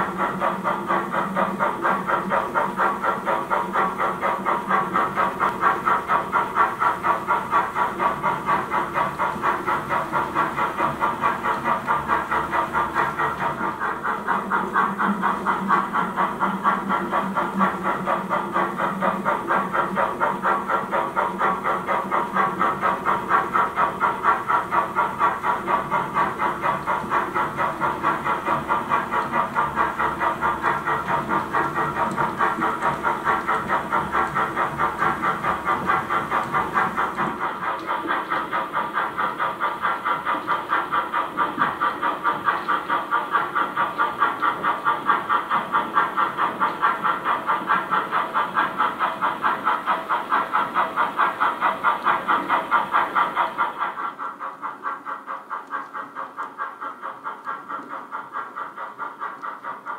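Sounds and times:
model steam locomotive chuffing: 0:00.0 - 0:59.9.

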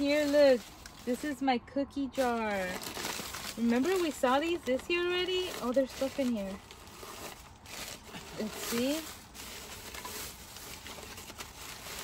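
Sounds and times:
plastic bags and paper rustling: 0:00.0 - 0:12.0.

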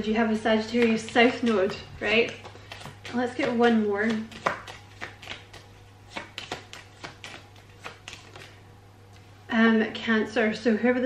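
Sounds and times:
cards being shuffled: 0:00.5 - 0:08.6.

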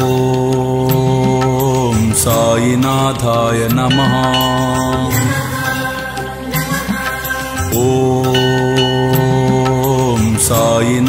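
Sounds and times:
devotional music with percussion: 0:00.0 - 0:11.0.

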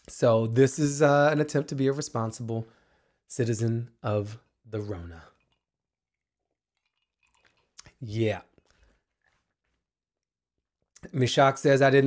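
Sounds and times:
mouth clicks: 0:07.2 - 0:08.0.

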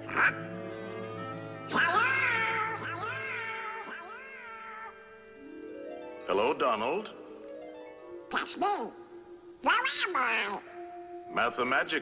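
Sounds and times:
cartoon duck voice squawking: 0:00.0 - 0:00.5, 0:01.7 - 0:05.0
soft sustained music: 0:00.0 - 0:12.0.

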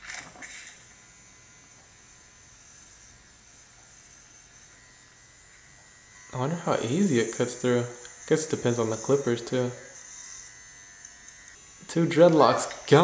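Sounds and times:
electric hair clippers buzzing: 0:00.0 - 0:13.0.

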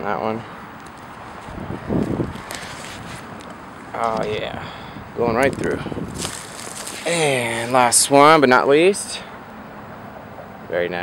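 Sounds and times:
footsteps on dry grass: 0:01.3 - 0:03.6, 0:05.6 - 0:07.9.

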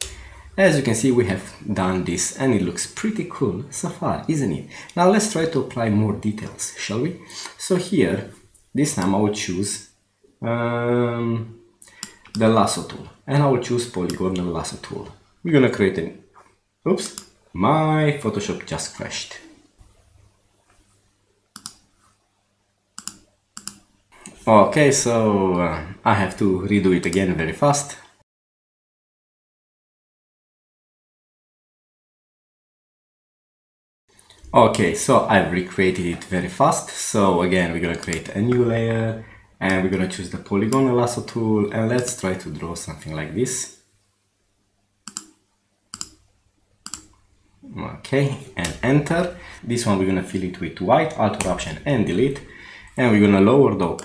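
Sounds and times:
computer mouse clicks: 0:11.8 - 0:12.5, 0:21.5 - 0:21.8, 0:23.0 - 0:24.4, 0:37.9 - 0:38.6, 0:41.9 - 0:42.2, 0:45.0 - 0:46.2, 0:46.8 - 0:47.2.

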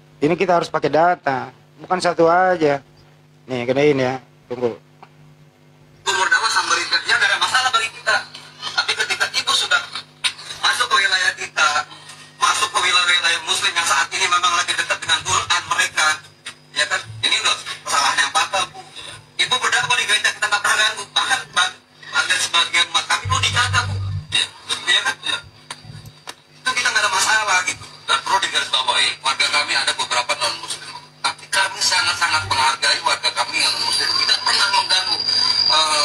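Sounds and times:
steady low hum: 0:00.0 - 0:22.4, 0:23.0 - 0:33.6.

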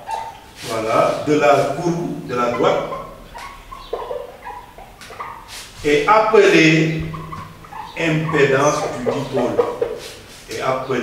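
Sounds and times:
marker squeaking on whiteboard: 0:00.0 - 0:10.7.

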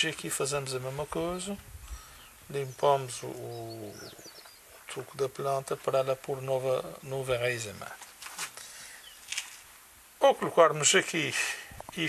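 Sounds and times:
man breathing: 0:01.8 - 0:02.4, 0:08.6 - 0:09.2.

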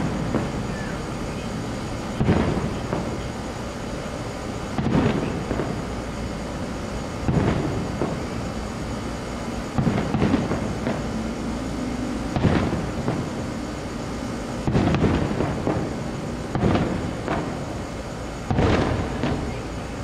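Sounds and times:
fireworks booming: 0:00.0 - 0:20.0
steady background noise: 0:00.0 - 0:20.0.

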